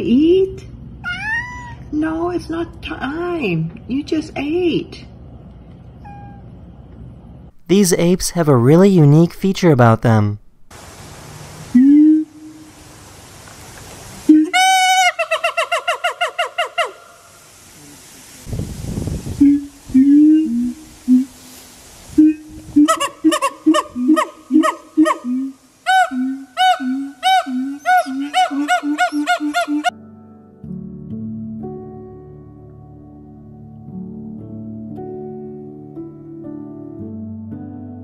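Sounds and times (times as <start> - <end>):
gibbons whooping and barking: 14.3 - 17.3, 22.2 - 29.9
low resonant gibbon calls: 14.3 - 17.4, 22.2 - 30.0.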